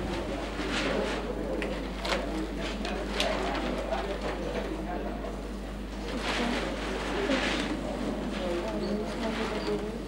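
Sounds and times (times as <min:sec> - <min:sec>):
steady low hum: 0:00.0 - 0:02.0.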